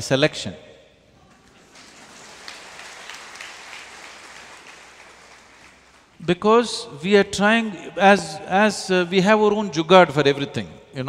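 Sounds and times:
faint audience applause: 1.2 - 6.2.

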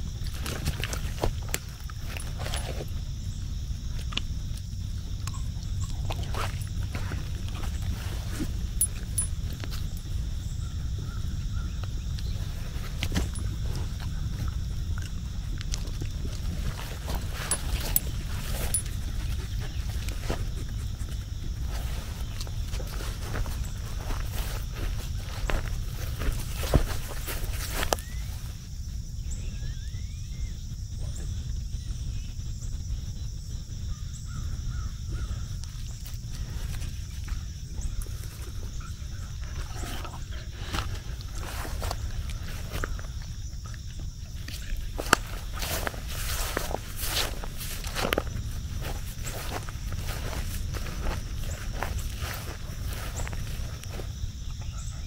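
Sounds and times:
steady low rumble: 0.0 - 55.0
dog footsteps in grass: 11.8 - 28.5, 40.7 - 54.9.

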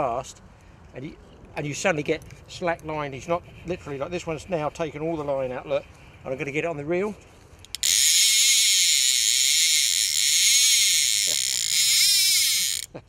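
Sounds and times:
fishing reel ratchet buzzing: 7.6 - 12.9.

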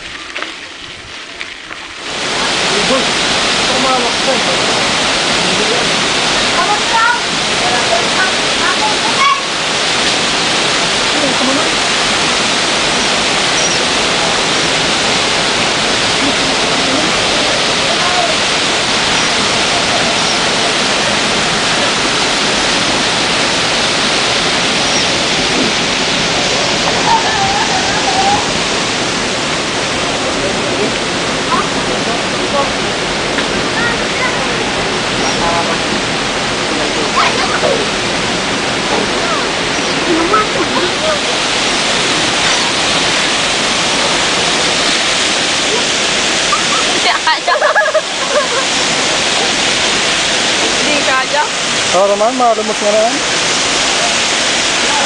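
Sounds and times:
river water rushing over weir: 0.0 - 55.0.

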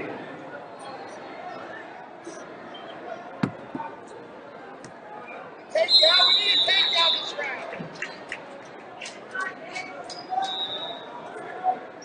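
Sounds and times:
background hall noise: 0.0 - 12.0.

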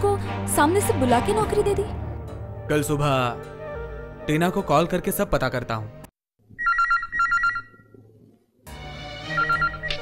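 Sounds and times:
film background music: 0.0 - 6.1, 8.7 - 10.0.

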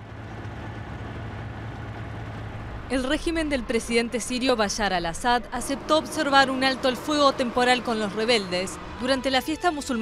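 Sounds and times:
vehicle engines droning: 0.0 - 10.0.

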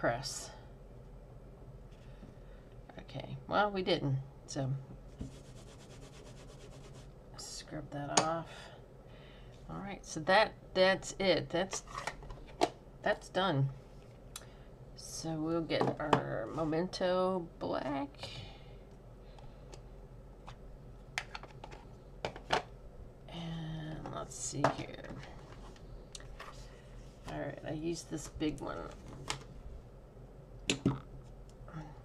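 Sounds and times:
stamping block rubbing paper towel: 5.2 - 7.1.

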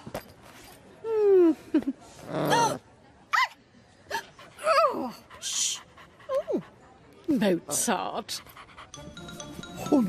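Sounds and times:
cartoon dog panting: 4.4 - 6.8, 8.2 - 10.0.

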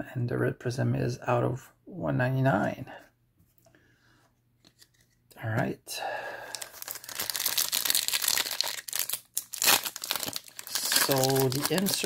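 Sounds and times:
foil wrapper crinkling and tearing: 6.5 - 12.0.

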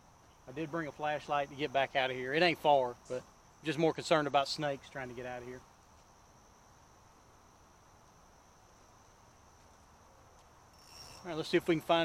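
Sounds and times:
high-pitched insect drone: 10.6 - 11.7.

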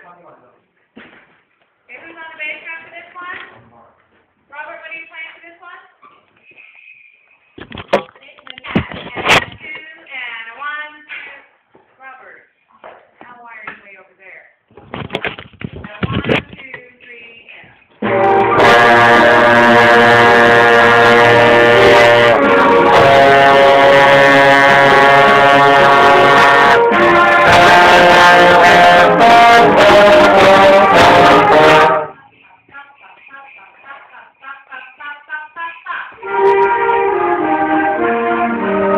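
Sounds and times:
trombone playing loudly: 18.0 - 32.2, 36.2 - 38.9.

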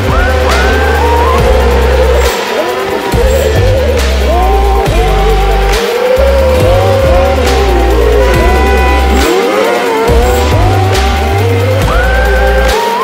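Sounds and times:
buggy engines revving: 0.0 - 13.0
music with steady beat and bass: 0.0 - 13.0.

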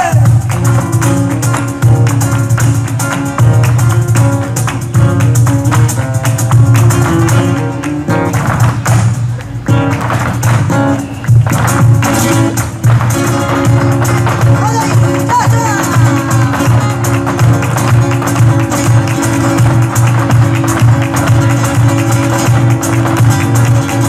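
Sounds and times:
acoustic guitar playing: 0.0 - 24.0
dancers' footwork strikes: 0.0 - 24.0.

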